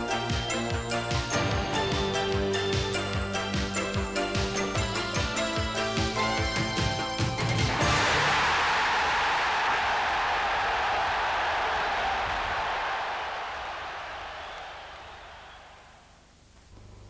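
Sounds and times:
football crowd cheering: 7.6 - 16.2
low steady hum: 16.0 - 17.0.

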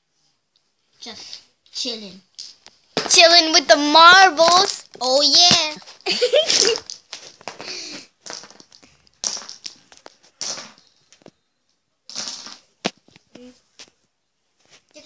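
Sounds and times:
person laughing: 6.0 - 6.9.

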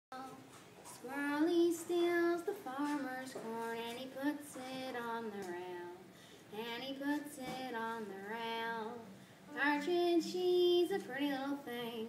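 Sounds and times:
girl singing unaccompanied ballad: 0.1 - 12.0.

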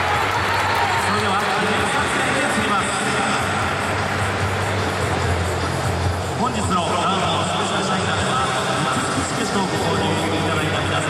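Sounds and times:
music over public address: 0.0 - 11.0.

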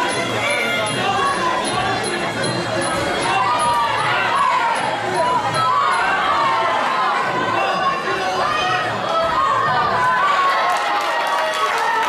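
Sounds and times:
crowd chattering and shouting: 0.0 - 12.0.

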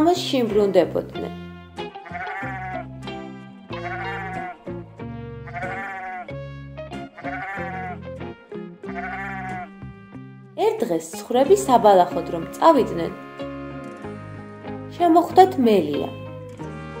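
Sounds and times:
soft background music: 0.0 - 17.0
sheep bleating: 2.0 - 2.9, 3.7 - 4.8, 5.4 - 6.4, 7.0 - 8.0, 8.9 - 9.9.

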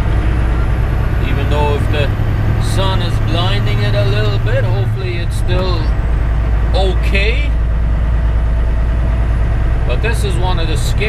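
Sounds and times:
diesel engine rumble: 0.0 - 11.0.

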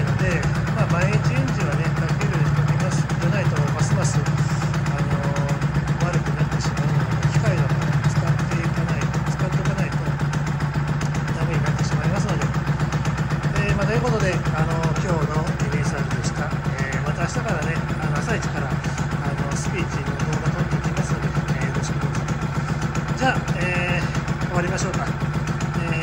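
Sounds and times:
motorcycle engine idling: 0.0 - 26.0.

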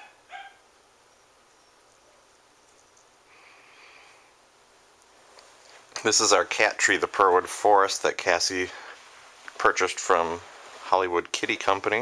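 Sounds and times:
faint soft hiss: 0.6 - 12.0.

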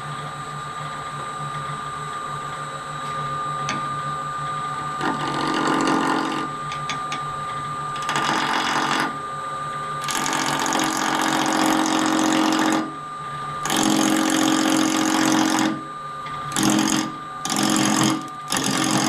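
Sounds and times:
wood lathe motor whine: 0.0 - 19.0
tool cutting spinning wood: 5.0 - 7.0, 8.0 - 9.2, 10.0 - 13.0, 13.6 - 15.8, 16.5 - 19.0.

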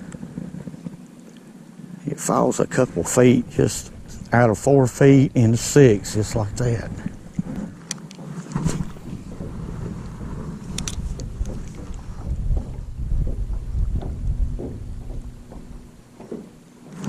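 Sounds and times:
wind rumbling on microphone: 0.0 - 17.0
sharp reel clicks: 10.7 - 11.2.

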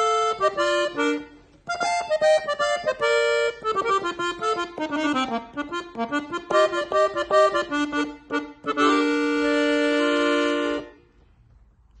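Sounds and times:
accordion chord: 0.0 - 11.2.

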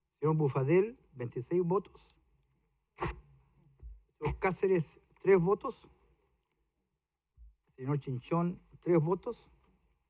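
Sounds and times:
short sharp voice sound: 3.0 - 3.3
soft low bump: 3.8 - 4.4.

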